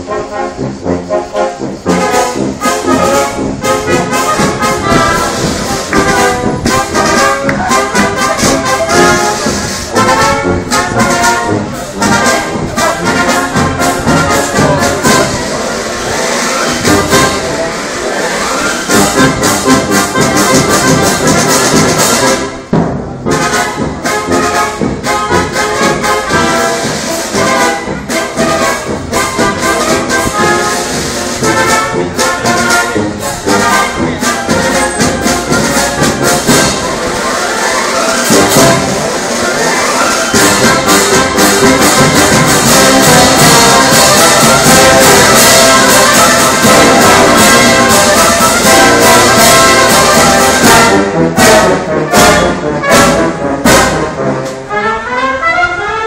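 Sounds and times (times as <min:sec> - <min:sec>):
sousaphone bass: 0:00.0 - 0:17.5
marching brass band: 0:00.0 - 0:56.0.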